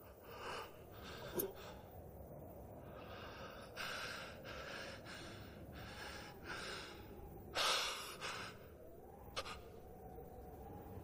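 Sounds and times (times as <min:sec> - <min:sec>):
person breathing heavily: 0:00.0 - 0:08.8.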